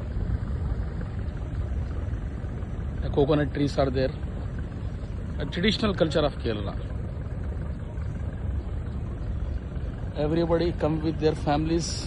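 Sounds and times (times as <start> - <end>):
boat engine rumbling: 0.0 - 12.0.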